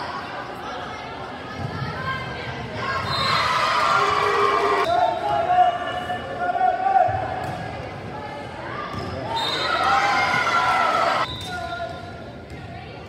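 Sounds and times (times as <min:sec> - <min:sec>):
people shouting and cheering: 0:01.7 - 0:07.4, 0:08.6 - 0:12.0.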